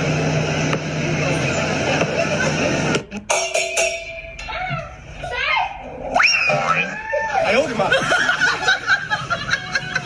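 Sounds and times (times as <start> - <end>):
crowd chatter: 0.0 - 3.3, 3.9 - 10.0
low machine hum: 0.0 - 10.0.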